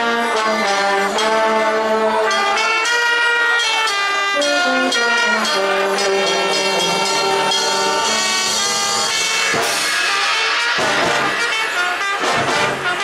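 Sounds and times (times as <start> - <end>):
brass section playing chords: 0.0 - 13.0
sharp percussion hit: 4.9 - 13.0.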